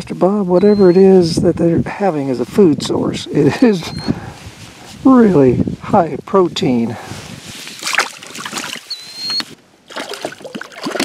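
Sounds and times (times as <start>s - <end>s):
fish splashing in water: 7.6s - 11.0s.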